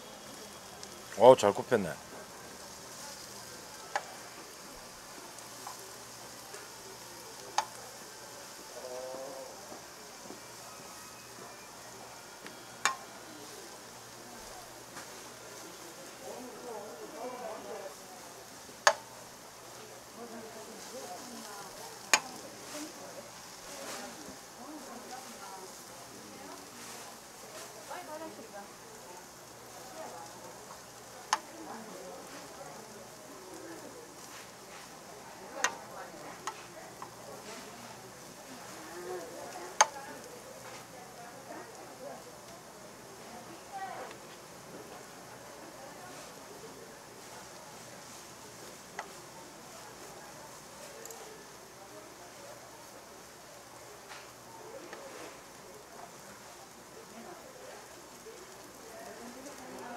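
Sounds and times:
root strips sizzling in pan: 0.0s - 59.9s
metal tongs clicking on pan: 22.0s - 22.4s.

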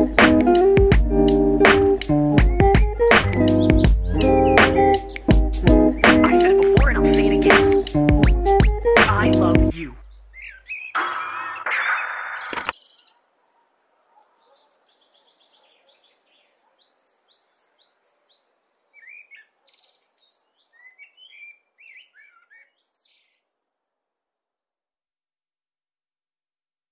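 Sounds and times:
music: 0.0s - 10.0s
faint birdsong: 0.5s - 24.2s.

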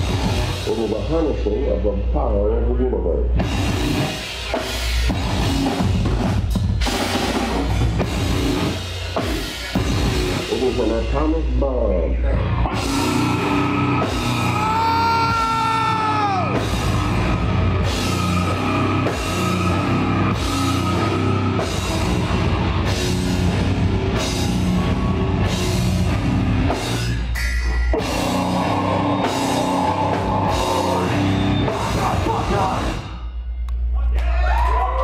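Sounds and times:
heavy metal band playing live: 0.0s - 1.7s, 3.3s - 33.3s.

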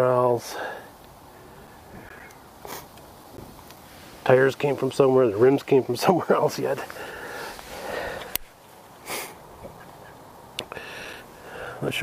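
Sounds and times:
person sniffing: 2.6s - 3.0s, 6.9s - 8.4s, 9.0s - 9.4s.

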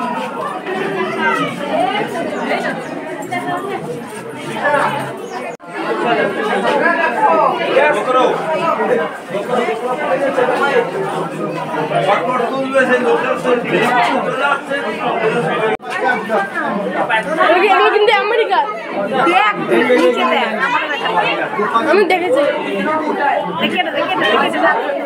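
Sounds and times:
people chattering: 0.0s - 25.0s.

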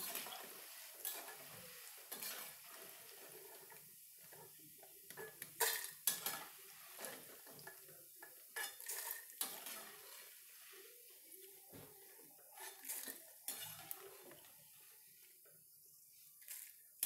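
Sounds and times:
metal spoon scraping a pan: 0.0s - 10.9s, 12.5s - 15.0s
faint frying sizzle: 0.0s - 17.0s.

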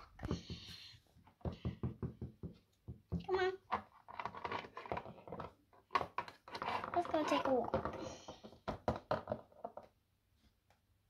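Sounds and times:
plastic toys tapping and clicking: 0.0s - 10.0s.

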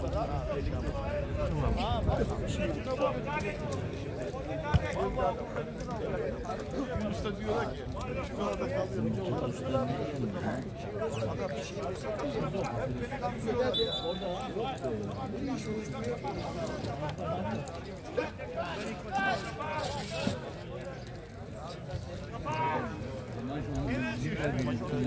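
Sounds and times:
men talking and calling out: 0.0s - 25.0s.

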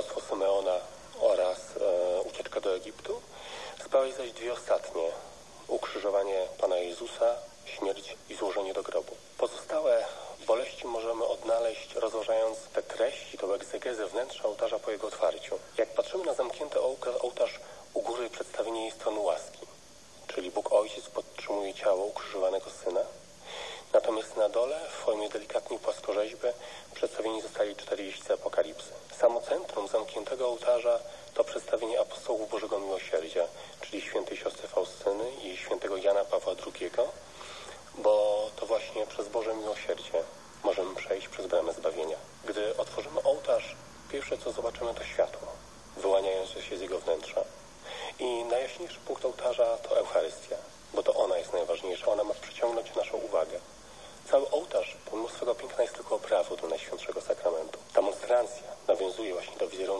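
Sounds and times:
person talking: 0.0s - 23.2s, 23.8s - 59.9s.

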